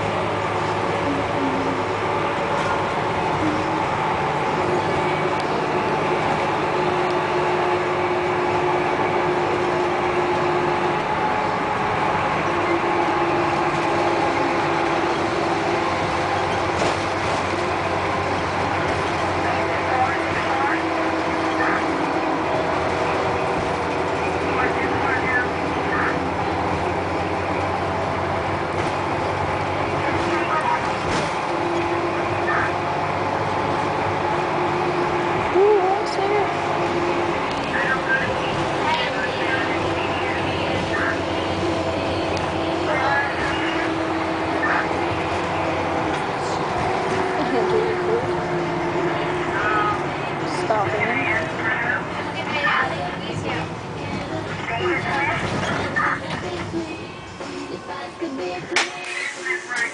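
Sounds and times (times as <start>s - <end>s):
bus engine and road noise: 0.0s - 59.9s
faint voices: 18.7s - 28.4s, 35.2s - 59.9s.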